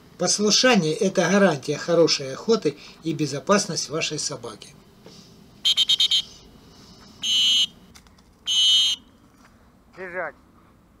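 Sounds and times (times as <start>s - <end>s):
dog whistle pips and blasts: 5.7s - 6.3s, 7.2s - 7.7s, 8.5s - 9.0s.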